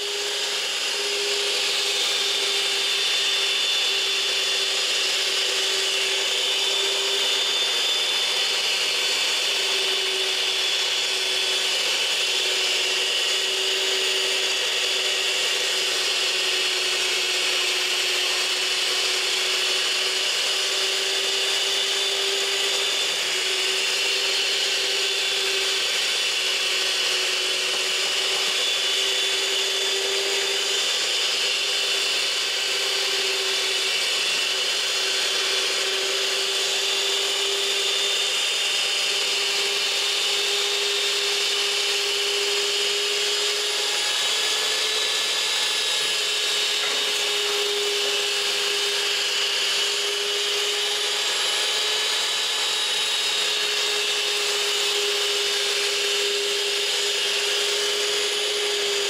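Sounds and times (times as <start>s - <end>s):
stand mixer motor humming: 0.0s - 59.0s.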